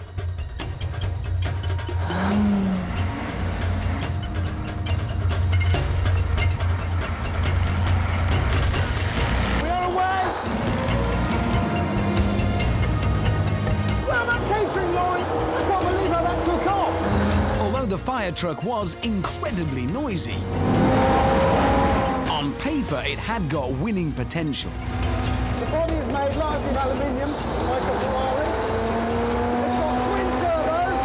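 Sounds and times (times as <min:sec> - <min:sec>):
heavy vehicle engines droning: 0:01.6 - 0:18.0, 0:24.2 - 0:31.0.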